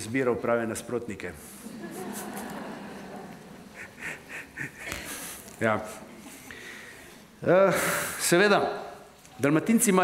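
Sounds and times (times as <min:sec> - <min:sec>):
audience laughter: 0:01.6 - 0:05.0.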